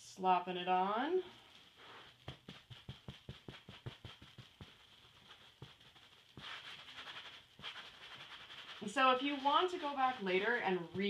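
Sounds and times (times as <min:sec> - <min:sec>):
damp sponge dabbing leather: 0:01.3 - 0:11.0
sponge wiping strokes: 0:01.4 - 0:11.0.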